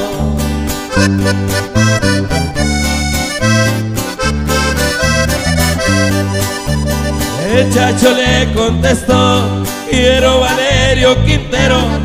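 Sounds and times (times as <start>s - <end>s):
low bass notes: 0.0s - 12.0s
strummed guitar: 0.0s - 12.0s
button accordion melody: 0.8s - 8.7s.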